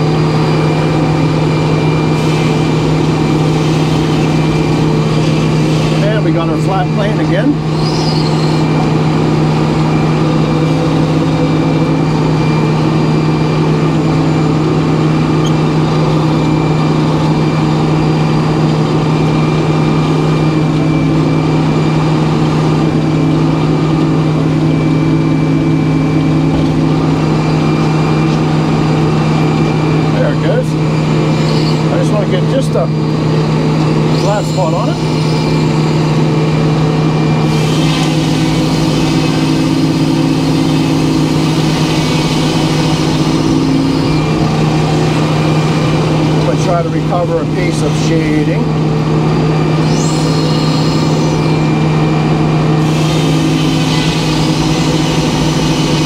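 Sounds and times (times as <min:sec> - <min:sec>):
sawmill engine droning: 0:00.0 - 0:56.0
saw blade rushing noise: 0:02.1 - 0:06.2, 0:31.2 - 0:32.9, 0:34.0 - 0:36.2, 0:37.4 - 0:46.2, 0:49.8 - 0:51.7, 0:52.8 - 0:56.0.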